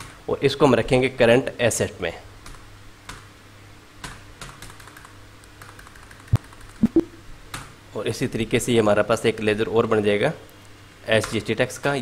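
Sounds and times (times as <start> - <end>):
computer keyboard typing: 4.0 - 7.6.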